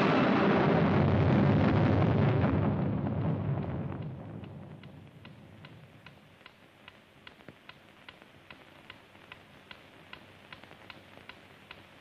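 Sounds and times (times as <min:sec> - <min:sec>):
clock ticking: 0:03.6 - 0:11.9.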